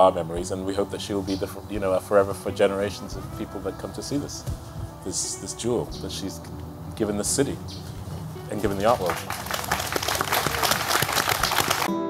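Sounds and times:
crowd applauding: 8.5s - 11.9s.

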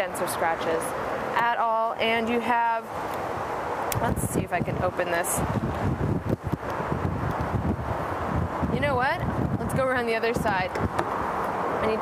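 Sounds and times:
wind buffeting microphone: 2.2s - 12.0s.

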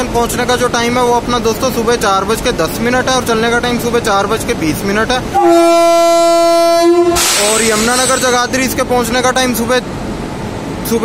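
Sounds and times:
locomotive horn blast: 5.3s - 8.4s.

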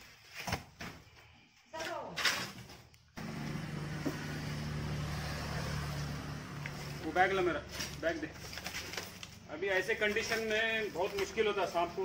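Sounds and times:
low motor hum: 3.2s - 7.1s.

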